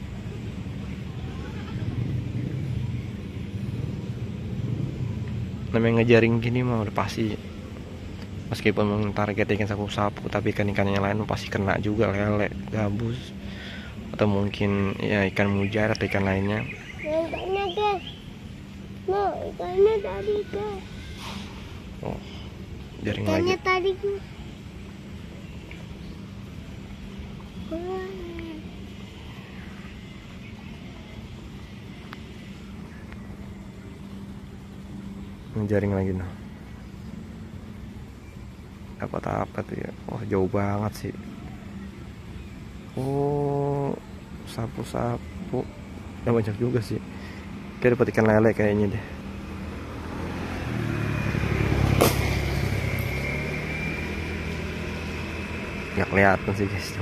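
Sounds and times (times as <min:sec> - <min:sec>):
low steady hum: 0:00.0 - 0:57.0
motor vehicle passing: 0:00.0 - 0:57.0.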